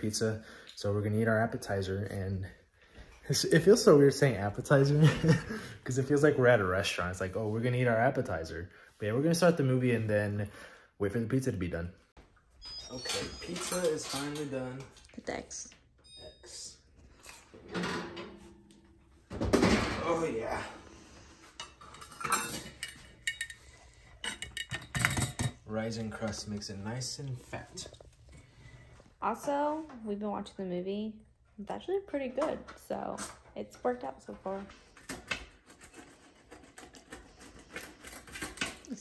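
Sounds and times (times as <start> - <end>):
metal pan clinking: 21.6 - 25.6
pizza cutter crunching and scraping: 35.0 - 39.0.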